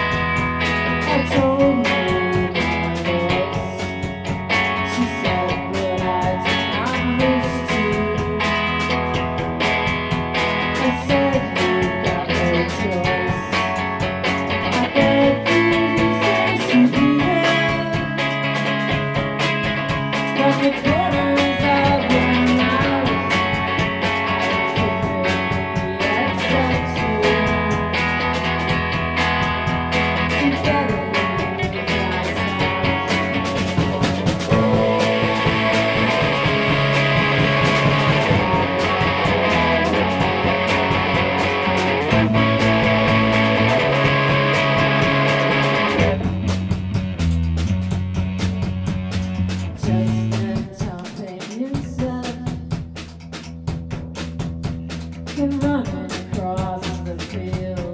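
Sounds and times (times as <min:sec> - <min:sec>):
bass guitar: 0:00.0 - 0:57.9
steady drum beat: 0:00.0 - 0:57.9
electric guitar sustained notes: 0:20.9 - 0:47.2.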